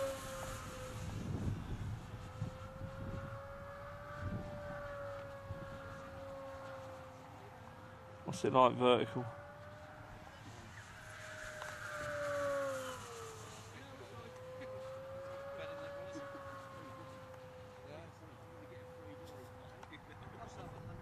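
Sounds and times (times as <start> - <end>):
electric model plane motor whining: 0.0 - 21.0.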